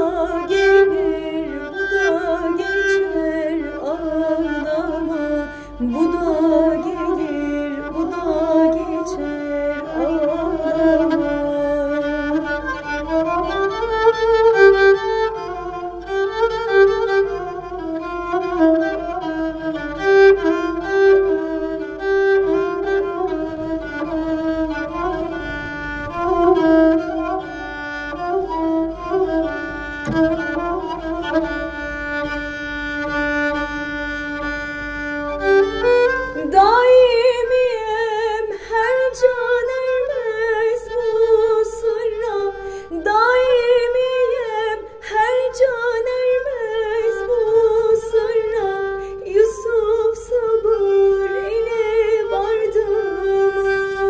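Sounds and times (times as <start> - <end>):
woman singing with vibrato: 0.0 - 12.1, 36.4 - 54.0
bowed spike fiddle melody: 12.2 - 37.6.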